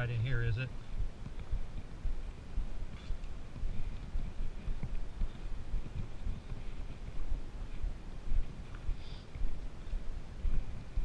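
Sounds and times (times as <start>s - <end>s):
camera rumble from movement: 0.0s - 11.0s
footsteps on dirt trail: 0.0s - 11.0s.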